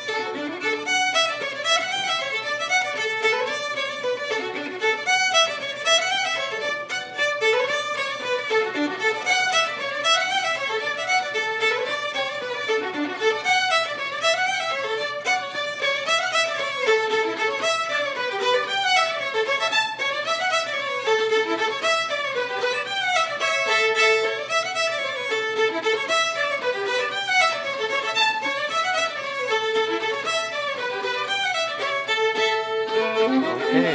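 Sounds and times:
fiddle playing fast reel: 0:00.0 - 0:33.9.

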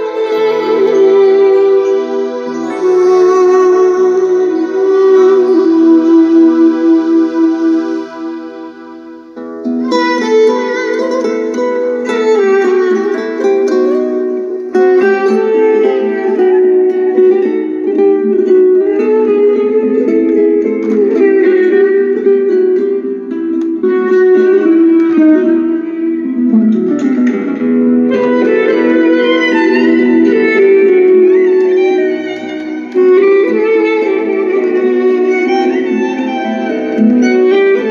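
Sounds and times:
song with plucked guitar: 0:00.0 - 0:37.9.

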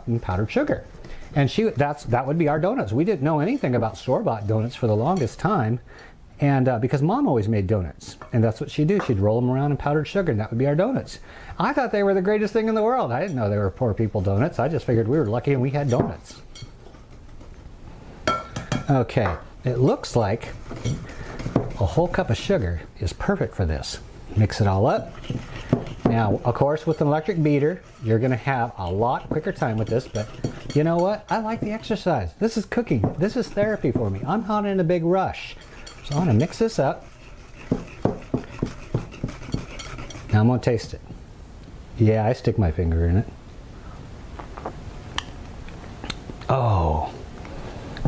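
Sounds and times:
whisk stirring frosting in bowl: 0:00.0 - 0:05.8, 0:08.4 - 0:17.2, 0:19.6 - 0:41.0.

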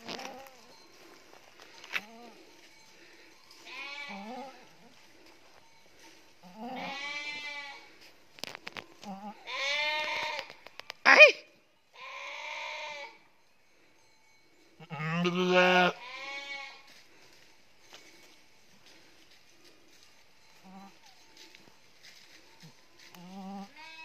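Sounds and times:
sheep bleating: 0:03.6 - 0:04.6, 0:06.5 - 0:08.0, 0:09.0 - 0:10.5, 0:12.0 - 0:13.2, 0:14.8 - 0:16.9, 0:23.2 - 0:24.0.

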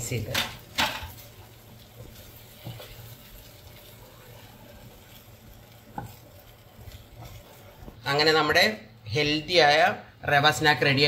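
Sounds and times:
faint frying sizzle: 0:00.0 - 0:11.0
spatula tapping pan: 0:00.3 - 0:03.9, 0:04.7 - 0:08.1
spatula stirring in frying pan: 0:00.3 - 0:09.0.

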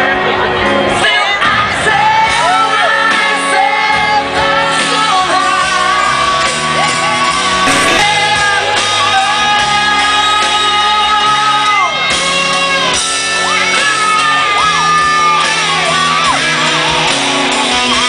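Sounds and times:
live rock band playing: 0:07.7 - 0:08.7
crowd singing and shouting: 0:07.7 - 0:09.2.

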